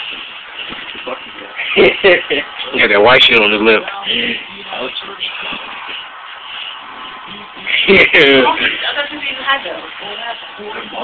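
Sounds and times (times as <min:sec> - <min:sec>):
faint television voices: 0:00.0 - 0:11.0
television music: 0:00.0 - 0:11.0.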